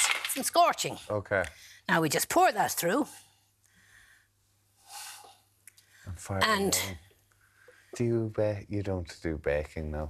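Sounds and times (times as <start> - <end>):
soft breath or sniff: 3.2 - 6.2.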